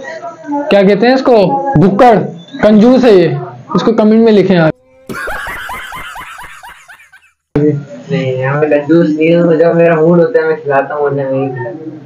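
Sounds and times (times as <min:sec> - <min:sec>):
man laughing: 0:05.1 - 0:07.4.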